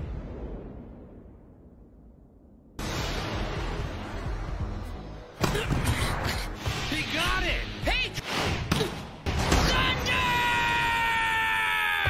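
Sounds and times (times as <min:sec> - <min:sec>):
background music: 0:02.8 - 0:12.0.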